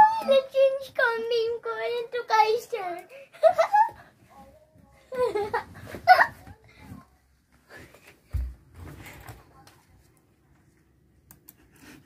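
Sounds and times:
boy laughing: 3.1 - 4.1, 5.1 - 6.5.

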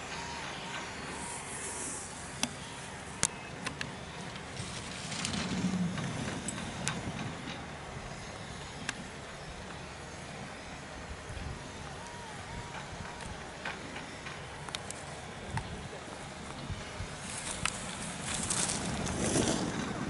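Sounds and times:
outdoor wind noise: 0.0 - 20.0
skis scraping on hard snow: 17.2 - 20.0.

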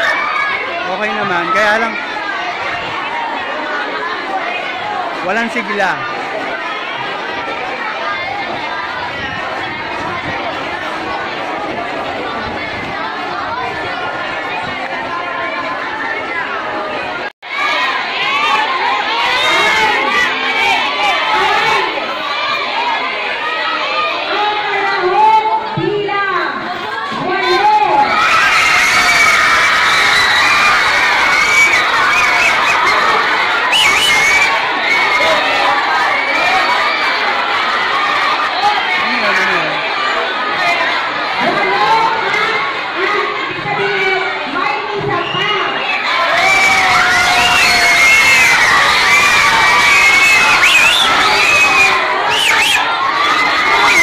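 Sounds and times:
children chattering: 0.0 - 54.0.

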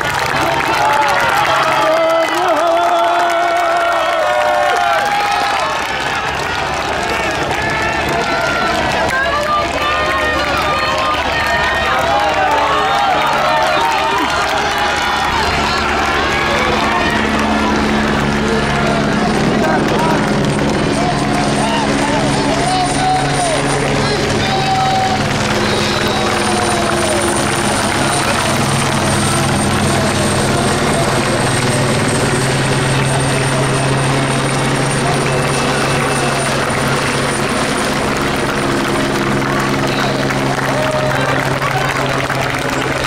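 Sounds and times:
helicopter engine and rotor: 0.0 - 43.0
voices: 0.0 - 43.0.

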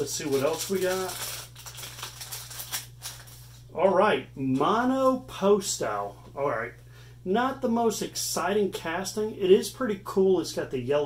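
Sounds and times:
plastic packaging torn open: 0.0 - 3.5.

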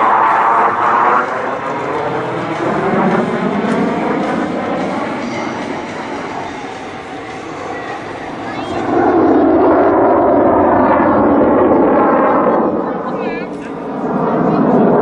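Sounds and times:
jet engines roaring: 0.0 - 15.0.

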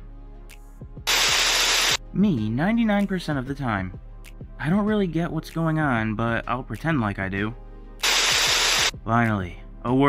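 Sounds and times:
faint background music: 0.0 - 10.0
burst of static hiss: 1.1 - 2.0, 8.0 - 8.9.

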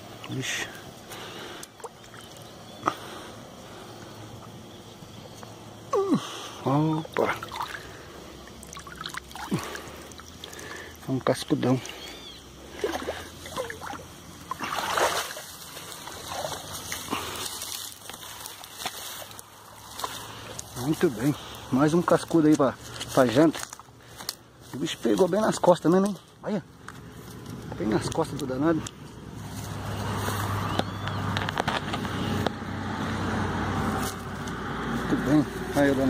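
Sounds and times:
water splashing: 7.0 - 11.1, 12.6 - 20.4
dry grass rustling underfoot: 14.6 - 32.4, 33.8 - 36.0
phone and mesh bag handling noise: 30.8 - 32.3.

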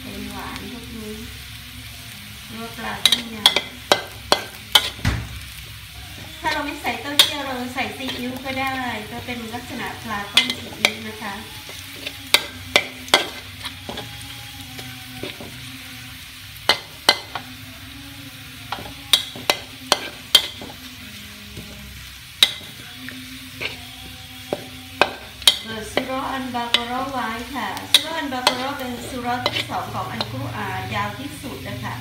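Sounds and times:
garlic frying in a wok: 0.0 - 32.0
metal spatula scraping a pan: 6.1 - 15.8, 22.4 - 30.8.

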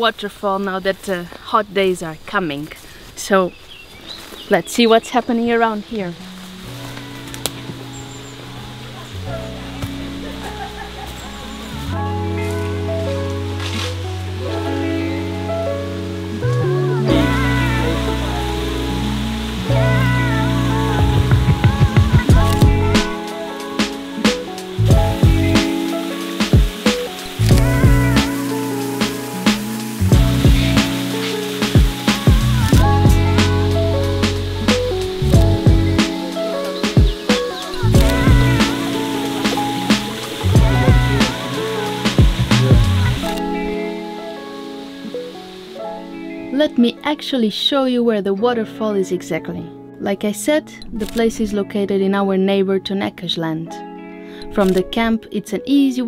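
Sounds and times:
background music with a beat: 9.3 - 46.2.

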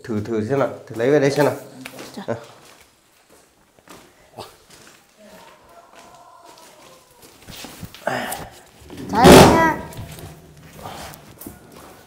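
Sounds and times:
soft footsteps on tiled floor: 0.0 - 9.1, 9.9 - 12.0.

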